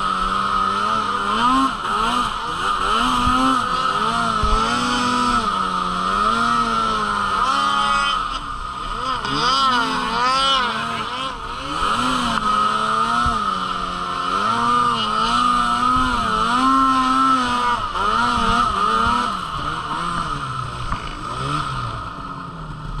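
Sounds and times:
snowmobile engine revving: 0:00.0 - 0:23.0.

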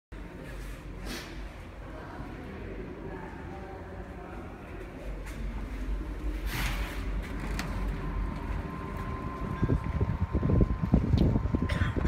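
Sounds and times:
train rumbling at rest: 0:00.2 - 0:12.0
wind buffeting microphone: 0:07.8 - 0:12.0.

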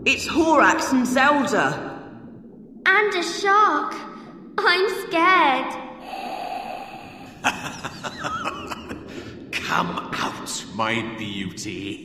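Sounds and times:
gliding bubble-like tones: 0:00.0 - 0:12.0
underwater watery wash: 0:00.0 - 0:12.0.

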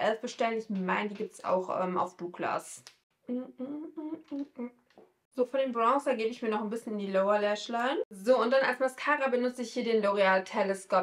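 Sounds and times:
woman humming a tune: 0:03.3 - 0:04.7.

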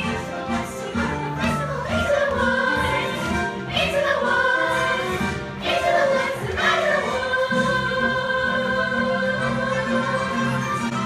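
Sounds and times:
young voices singing in chorus: 0:00.7 - 0:10.9.

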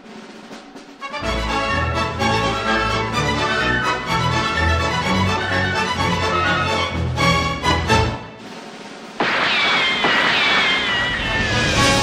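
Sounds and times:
music: 0:00.0 - 0:09.2, 0:11.1 - 0:12.0.

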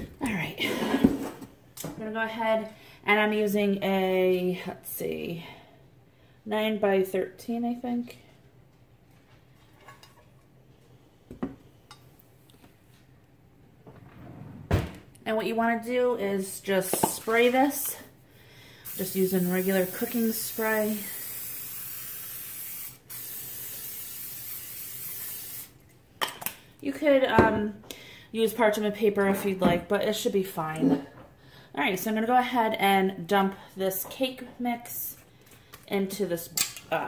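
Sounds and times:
aerosol spray hissing: 0:18.8 - 0:25.8.

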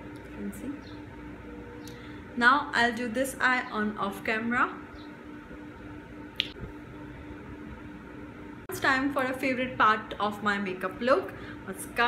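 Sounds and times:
faint steady hum: 0:00.0 - 0:12.0
finger snap: 0:06.4 - 0:06.6.

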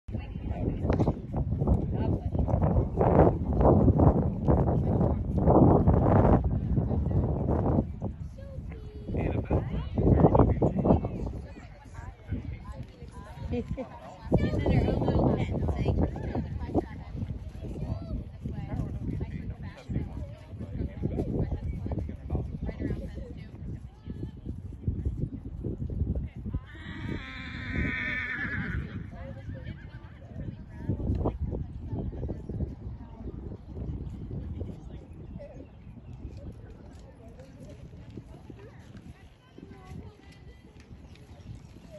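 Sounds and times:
wind buffeting microphone: 0:00.0 - 0:41.9
horse whinnying: 0:26.7 - 0:29.1.

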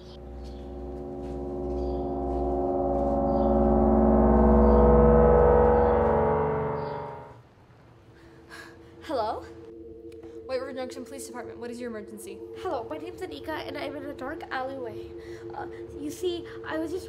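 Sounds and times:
deep gong-like drone: 0:00.0 - 0:07.4, 0:09.6 - 0:17.0.

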